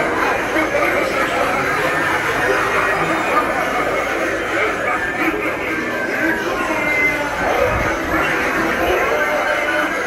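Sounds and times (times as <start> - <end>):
indistinct voices talking: 0.0 - 10.0.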